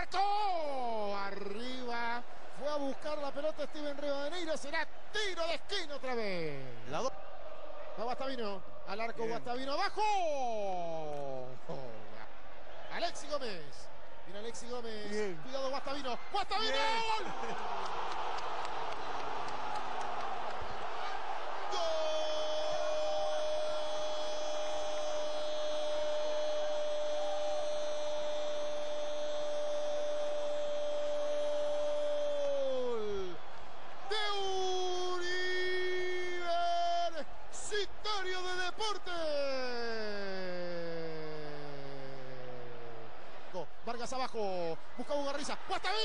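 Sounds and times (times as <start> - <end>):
stadium crowd noise: 0.0 - 46.0
commentator shouting goal: 14.9 - 17.3, 34.0 - 42.9.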